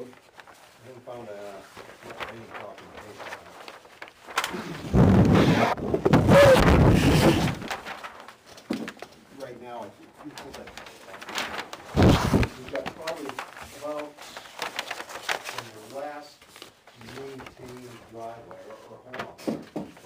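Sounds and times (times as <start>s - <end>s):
paper sheets rustling: 0.0s - 20.0s.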